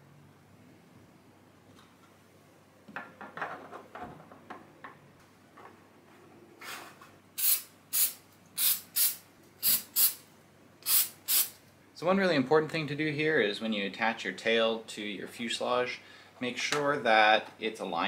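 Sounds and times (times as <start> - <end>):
aerosol spray hisses: 7.4 - 10.2, 10.8 - 11.6.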